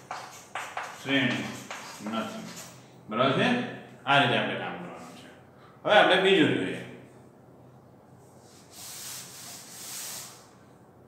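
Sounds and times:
cloth wiping chalk off blackboard: 0:00.0 - 0:02.7, 0:08.3 - 0:10.5.

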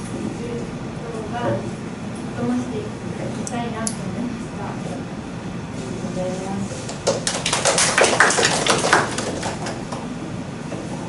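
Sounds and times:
people clapping: 0:06.9 - 0:10.1.

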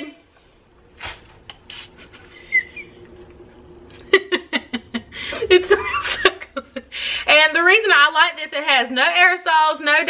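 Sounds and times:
trigger sprayer hissing bursts: 0:01.5 - 0:02.2.

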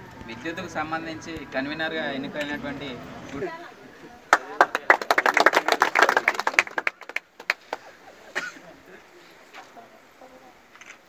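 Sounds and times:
group clapping: 0:04.2 - 0:08.2.

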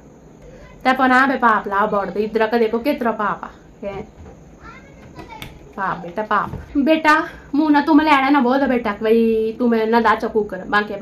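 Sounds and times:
faint murmur: 0:00.3 - 0:11.0
person talking: 0:00.8 - 0:11.0.

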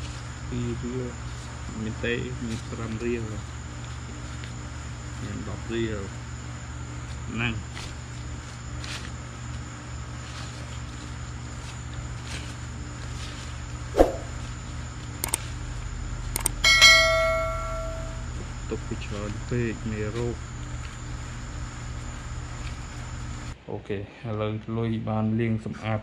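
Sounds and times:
steady low hum: 0:00.0 - 0:24.2
sharp click: 0:16.4 - 0:16.6
metallic bell-like ring: 0:16.6 - 0:18.3.

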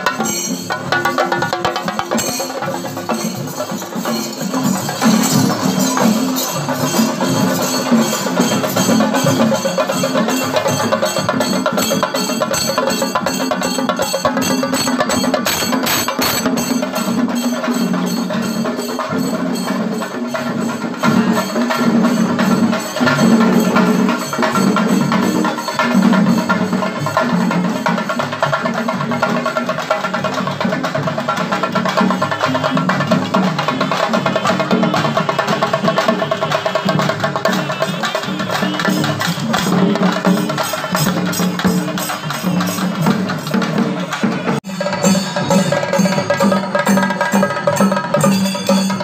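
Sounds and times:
drums beaten with sticks: 0:00.0 - 0:49.0.

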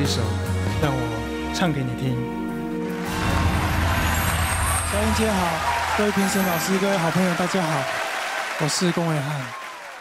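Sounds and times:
intro music: 0:00.3 - 0:08.1
studio audience applause: 0:02.8 - 0:10.0.

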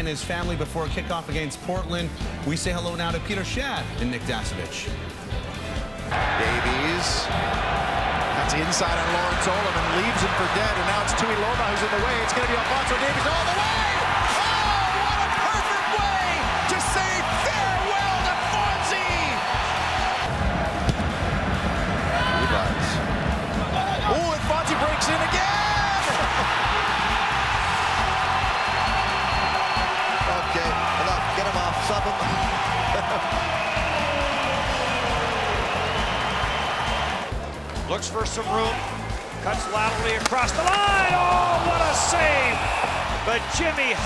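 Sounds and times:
background music with steady beat: 0:00.0 - 0:44.0
stadium crowd cheering: 0:05.6 - 0:44.0.

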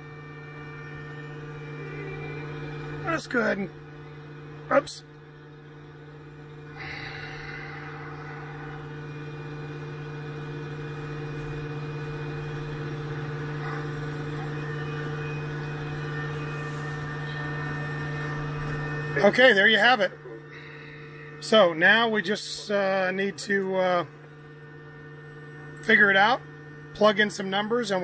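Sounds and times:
electrical hum: 0:00.0 - 0:28.0.

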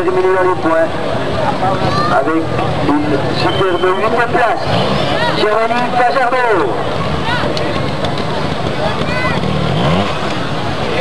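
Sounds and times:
motorcycle engine revving: 0:04.6 - 0:05.4, 0:06.8 - 0:11.0.

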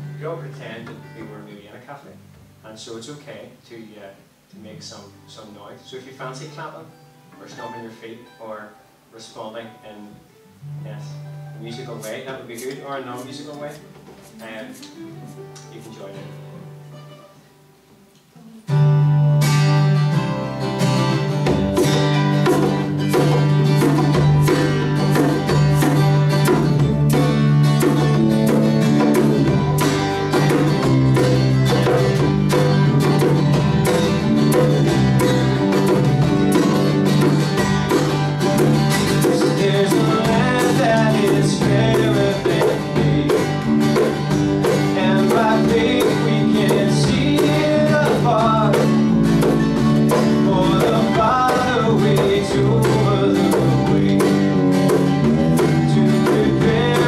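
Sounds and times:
person singing: 0:18.3 - 0:18.9, 0:39.2 - 0:43.7, 0:44.8 - 0:49.2, 0:50.2 - 0:54.6, 0:55.6 - 0:57.0
live band playing upbeat song: 0:18.8 - 0:57.0.

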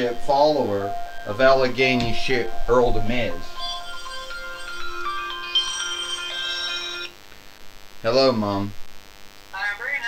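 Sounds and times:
phone ringtone melody: 0:00.0 - 0:07.1.

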